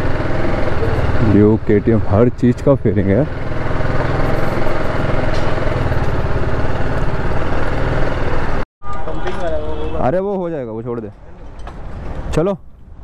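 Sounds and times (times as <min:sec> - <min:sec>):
motorcycle engine at low revs: 0:00.0 - 0:08.6.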